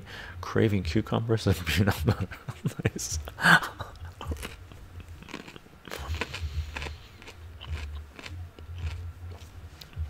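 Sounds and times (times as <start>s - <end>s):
crunching raw cucumber: 4.2s - 10.0s.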